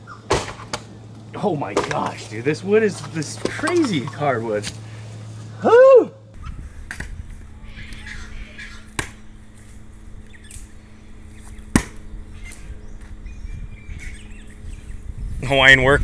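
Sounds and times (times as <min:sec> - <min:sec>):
faint steady hum: 0:00.0 - 0:16.0
low rumble: 0:06.4 - 0:16.0
wood being struck: 0:08.7 - 0:09.6, 0:11.4 - 0:13.2.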